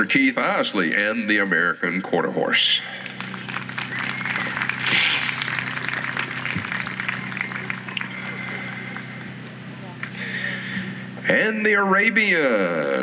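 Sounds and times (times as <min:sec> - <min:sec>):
steady low hum: 0:00.0 - 0:13.0
crowd applauding: 0:02.9 - 0:10.6.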